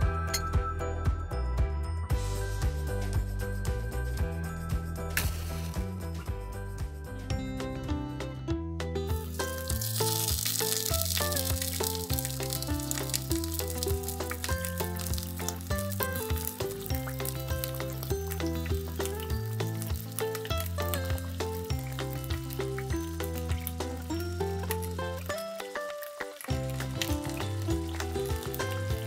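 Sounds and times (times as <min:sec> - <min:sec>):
background music: 0:00.0 - 0:29.0
fish sizzling in a wok: 0:05.2 - 0:06.2, 0:09.2 - 0:29.0.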